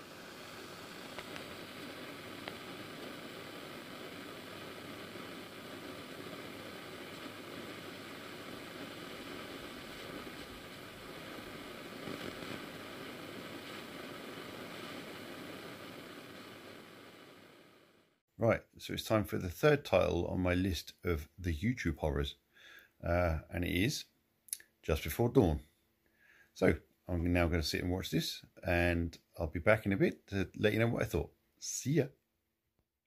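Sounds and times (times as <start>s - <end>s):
static hiss: 0.0s - 25.6s, 26.4s - 32.1s
faint clicks and pops: 1.0s - 16.5s.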